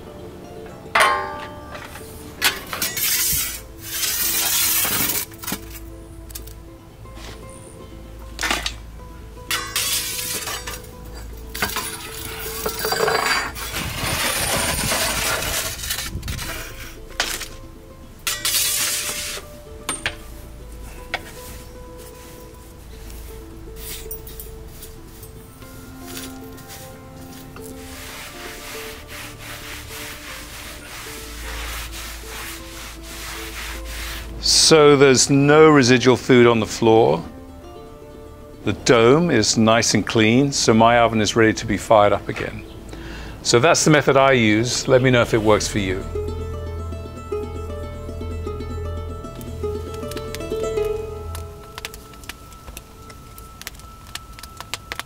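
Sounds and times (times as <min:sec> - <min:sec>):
background music: 0:00.0 - 0:55.0
charcoal clinking against metal: 0:00.6 - 0:06.6, 0:08.3 - 0:17.6, 0:18.2 - 0:36.0, 0:49.3 - 0:55.0
ash scraping on oven floor: 0:01.0 - 0:05.6, 0:11.6 - 0:17.5, 0:18.3 - 0:19.4, 0:27.5 - 0:34.7.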